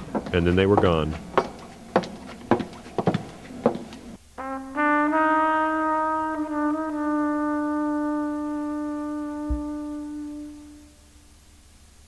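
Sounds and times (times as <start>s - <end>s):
footsteps: 0.0s - 4.2s, 9.5s - 9.8s.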